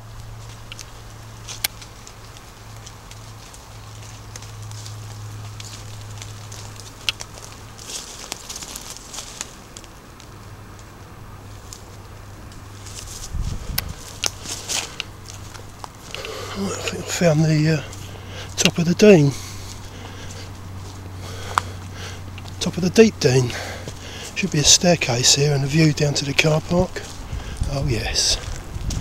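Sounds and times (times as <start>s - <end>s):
footsteps on dry leaves: 0.0s - 29.0s
steady low hum: 0.0s - 29.0s
sharp clicks and crackles: 0.1s - 16.4s.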